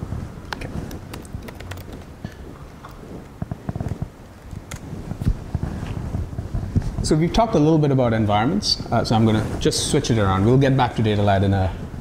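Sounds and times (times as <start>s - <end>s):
laptop clicks: 0.5s - 2.4s, 3.2s - 4.9s.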